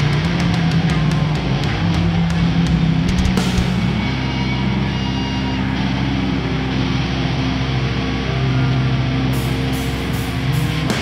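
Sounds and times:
distorted guitars and bass: 0:00.0 - 0:11.0
loud hall noise: 0:00.0 - 0:11.0.

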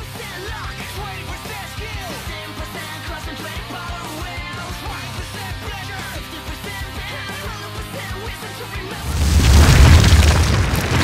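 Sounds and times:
crumbling debris crackling: 0:09.0 - 0:11.0
deep boom with rumble: 0:09.0 - 0:11.0.

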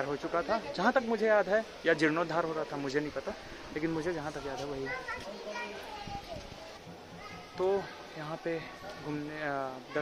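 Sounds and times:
open-air ambience: 0:00.0 - 0:10.0
child's voice: 0:04.8 - 0:07.6.

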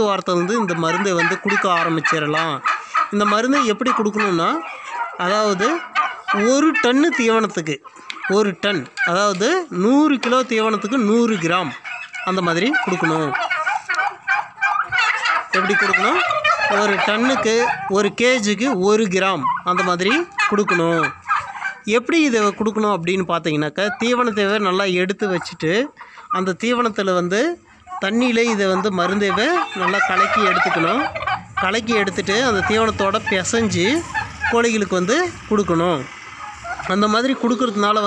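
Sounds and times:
man talking: 0:00.0 - 0:13.4, 0:15.5 - 0:21.2, 0:21.8 - 0:36.1, 0:36.8 - 0:38.0
rattling turkey gobble: 0:00.0 - 0:38.0
turkeys calling: 0:00.0 - 0:38.0.

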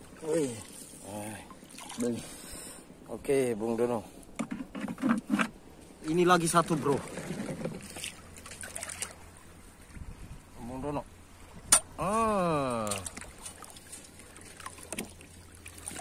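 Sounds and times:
water and handling sounds: 0:04.1 - 0:10.1, 0:12.7 - 0:16.0
man's wordless exclamation: 0:12.0 - 0:13.0.

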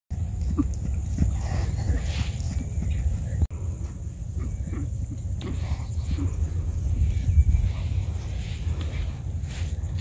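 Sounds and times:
hooves thudding on grass: 0:00.1 - 0:10.0
steady low rumble: 0:00.1 - 0:10.0.

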